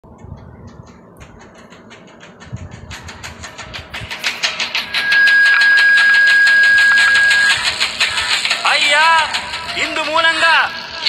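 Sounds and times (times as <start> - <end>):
rapid mechanical clicking: 0.0 - 11.0
high whistle-like tone: 4.7 - 8.0.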